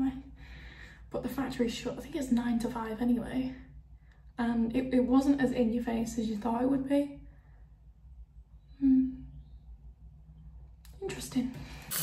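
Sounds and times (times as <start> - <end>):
low steady hum: 0.0 - 12.0
woman humming mm: 8.7 - 9.4.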